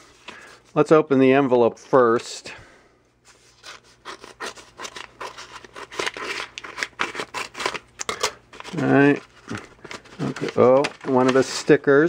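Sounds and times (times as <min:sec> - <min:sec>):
scissors cutting paper: 0:03.6 - 0:11.5
paper rustling: 0:08.5 - 0:12.0.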